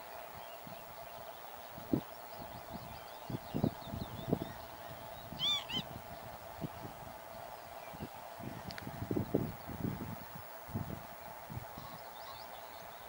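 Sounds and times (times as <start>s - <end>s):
small birds chirping: 0.1s - 10.4s
bird honking calls: 4.4s - 6.0s.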